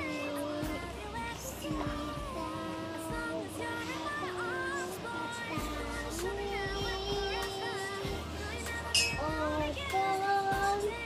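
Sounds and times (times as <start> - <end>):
young child singing: 0.0 - 11.0.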